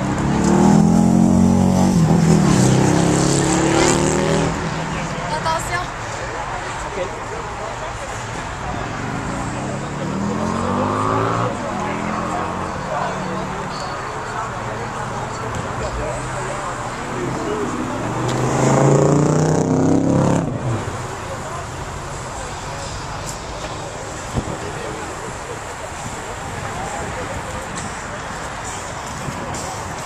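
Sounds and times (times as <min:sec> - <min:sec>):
car engine accelerating: 0:00.0 - 0:05.4, 0:06.3 - 0:30.0
faint background voices: 0:00.0 - 0:30.0
outdoor background noise: 0:00.0 - 0:30.0.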